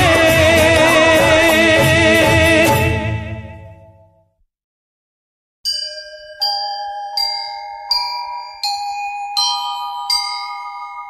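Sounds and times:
bell-like chime notes: 5.7 - 11.0.

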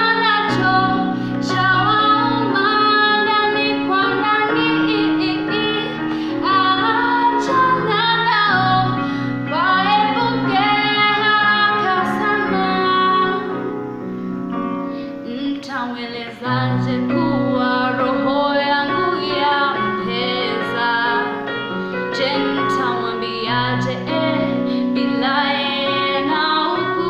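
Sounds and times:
woman singing: 0.0 - 13.7, 15.2 - 27.0
electronic keyboard chords: 0.0 - 15.6.

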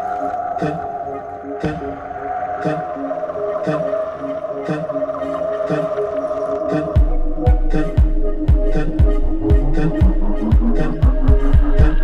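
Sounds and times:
sustained synth chords: 0.0 - 12.0
slow bass line: 7.0 - 12.0
soft beat: 7.0 - 12.0.

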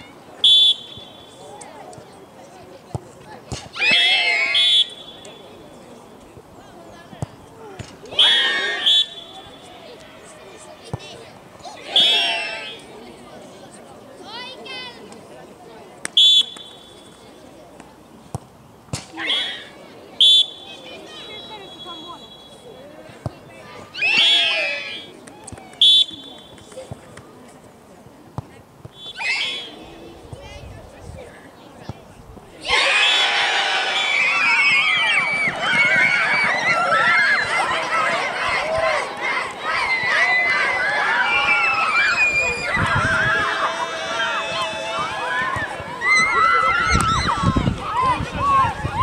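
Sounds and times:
referee's whistle blast: 0.4 - 1.4, 4.0 - 5.5, 8.2 - 9.7, 20.2 - 22.8, 29.0 - 29.8
girls shrieking and cheering: 32.6 - 49.0.

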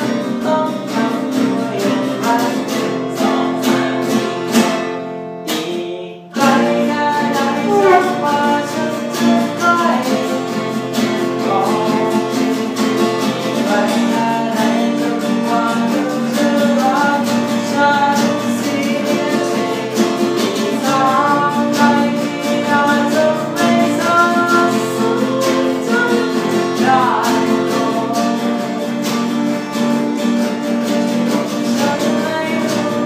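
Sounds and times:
man singing pop song: 0.0 - 3.8, 5.5 - 10.3, 11.4 - 12.4, 13.2 - 28.7, 31.7 - 33.0
acoustic guitars strumming: 0.0 - 33.0.

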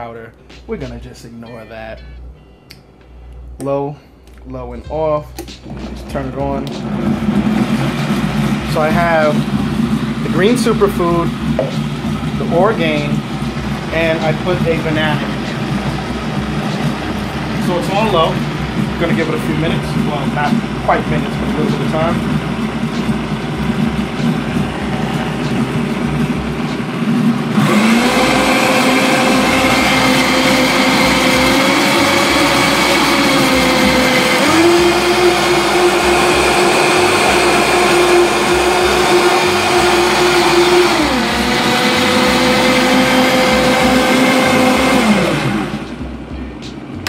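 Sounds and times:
blender motor running: 5.6 - 46.0.

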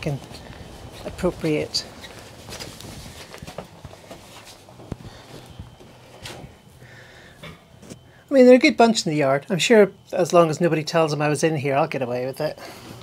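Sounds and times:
footsteps: 0.0 - 6.8.

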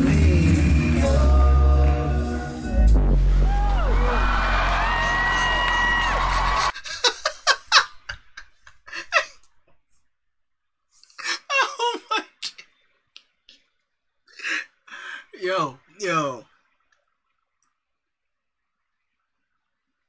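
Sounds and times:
deep sustained bass voice: 0.0 - 4.6
crowd noise: 3.4 - 6.7
man laughing: 6.4 - 9.4, 11.1 - 12.6.

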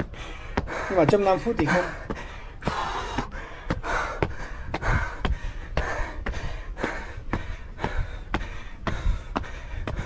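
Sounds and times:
man panting heavily: 0.0 - 10.0.

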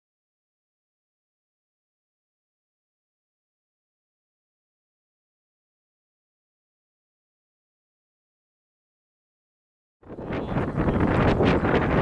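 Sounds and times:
wind buffeting microphone: 10.0 - 12.0.

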